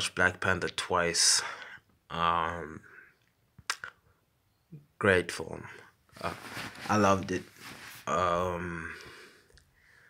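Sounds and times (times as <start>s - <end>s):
mouth clicks: 3.2s - 4.0s.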